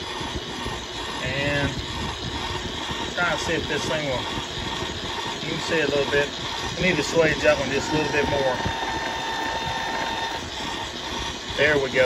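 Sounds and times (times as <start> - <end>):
machine motor hum: 0.0 - 12.0
thin whine: 0.0 - 12.0.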